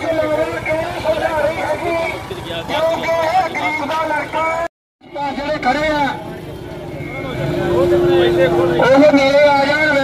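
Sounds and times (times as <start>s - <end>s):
crowd voices talking: 0.0s - 10.0s.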